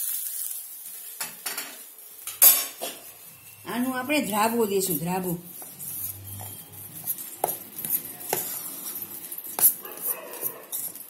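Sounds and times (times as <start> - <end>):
hot ghee sizzling: 0.0 - 11.0
metal utensils scraping steel pot: 1.2 - 11.0.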